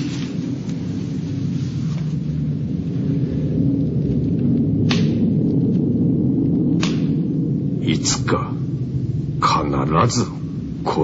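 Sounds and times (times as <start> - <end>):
low rumble: 0.0 - 11.0.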